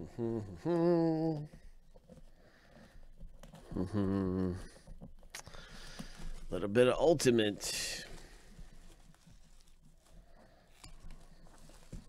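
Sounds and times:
plastic shrink wrap crinkling: 0:00.6 - 0:12.0.

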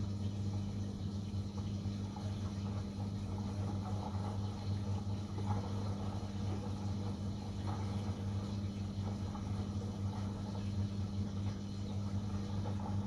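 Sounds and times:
washing machine humming: 0:00.0 - 0:13.0.

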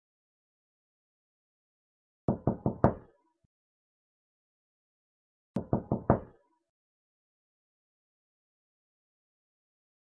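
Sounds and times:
quick knocks on a door: 0:02.3 - 0:03.1, 0:05.6 - 0:06.4.

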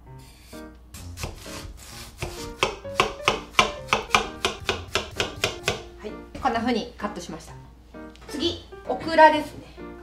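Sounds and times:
background music: 0:00.0 - 0:10.0
knife scraping and slicing yam: 0:00.2 - 0:05.8.

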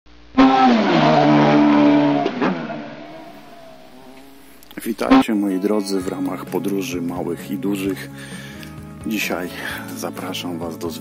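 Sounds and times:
loud vehicle sound: 0:00.4 - 0:05.3.

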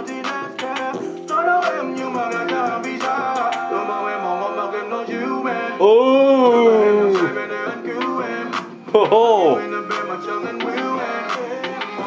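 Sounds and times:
backing track: 0:00.0 - 0:12.0
man singing: 0:00.0 - 0:12.0.

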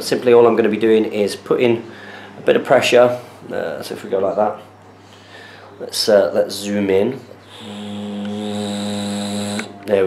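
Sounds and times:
camera zoom motor whirring: 0:07.5 - 0:09.8.

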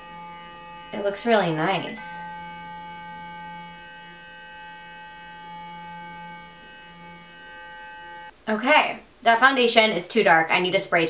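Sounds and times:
facial brush electric hum: 0:00.0 - 0:08.4.

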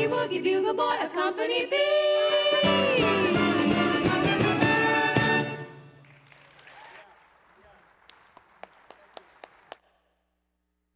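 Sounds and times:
hand claps: 0:06.0 - 0:10.2.

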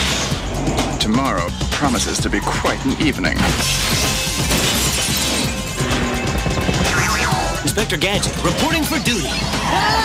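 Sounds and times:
trailer music: 0:00.0 - 0:10.0.

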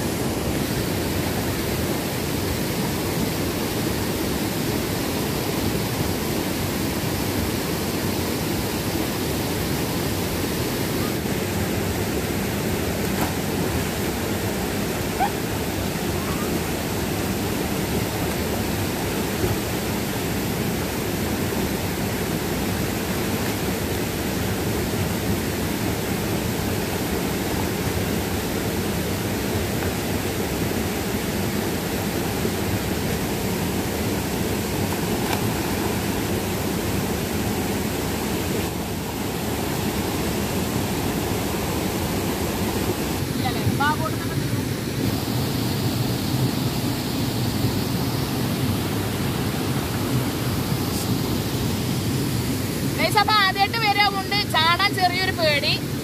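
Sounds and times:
waterfall over rocks: 0:00.0 - 0:56.0.

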